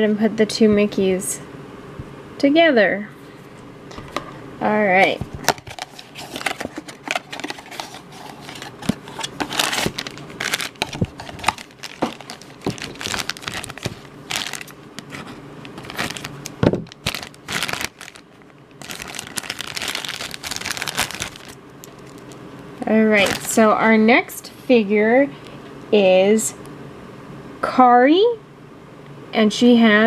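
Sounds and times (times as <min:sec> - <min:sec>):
foil bag crinkling and tearing: 0:05.1 - 0:23.7
cardboard box being opened: 0:05.2 - 0:18.2.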